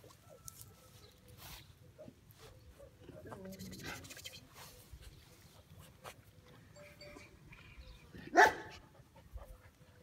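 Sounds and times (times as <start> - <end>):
puppy barking: 8.3 - 8.8.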